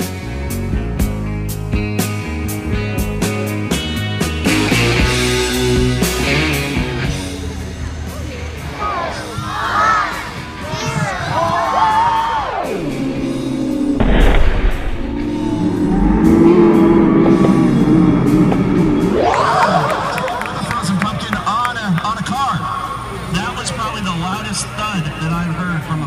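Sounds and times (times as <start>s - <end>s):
music: 0.0s - 26.0s
crowd cheering: 8.1s - 26.0s.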